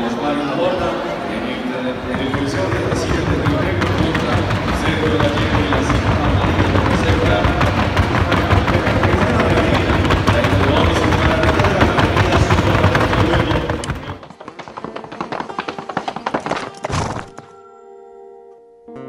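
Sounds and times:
arena music: 0:00.0 - 0:19.0
horse hooves clattering: 0:01.9 - 0:17.5.

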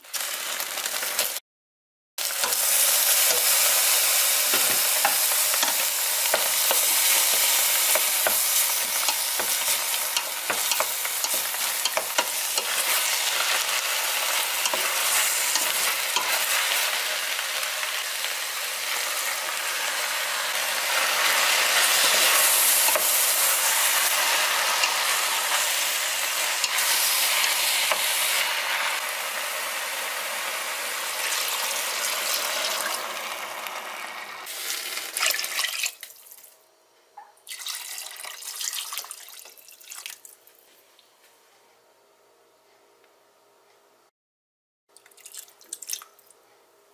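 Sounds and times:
meat sizzling in a pot: 0:00.0 - 0:01.4, 0:02.2 - 0:36.4.

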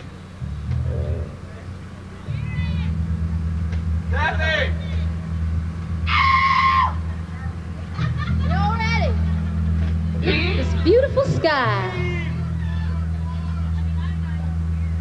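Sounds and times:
high bending phrases: 0:00.0 - 0:13.3
low bass drone: 0:00.0 - 0:15.0.

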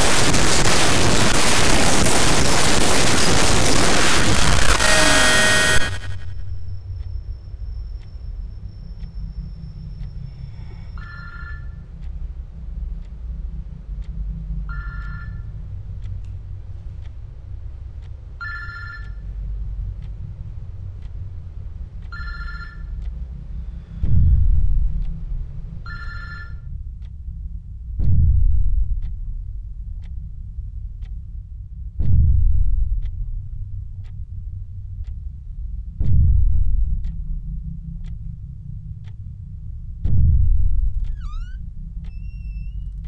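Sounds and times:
low rumble: 0:00.0 - 0:11.0, 0:11.6 - 0:26.0, 0:26.6 - 0:43.0
low steady drone: 0:00.0 - 0:26.0, 0:26.6 - 0:43.0
faint ticking: 0:00.0 - 0:43.0
mobile phone ringing: 0:11.0 - 0:11.8, 0:18.4 - 0:19.2, 0:22.2 - 0:22.9, 0:25.9 - 0:26.6
deep boom: 0:24.0 - 0:25.1, 0:27.9 - 0:29.4, 0:36.0 - 0:37.6, 0:39.9 - 0:42.0.

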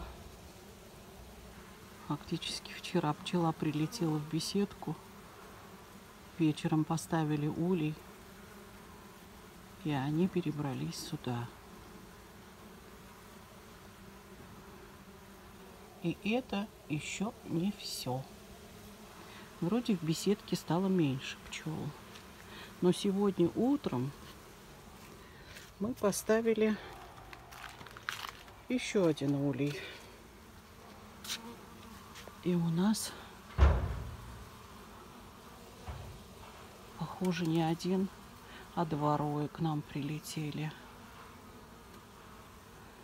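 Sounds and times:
honeybees buzzing: 0:00.0 - 0:43.0.

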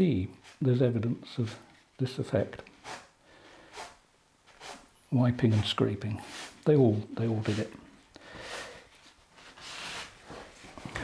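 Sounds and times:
paper rubbing on wet paint: 0:02.8 - 0:03.1, 0:03.7 - 0:06.6, 0:07.4 - 0:07.7, 0:09.4 - 0:10.2.

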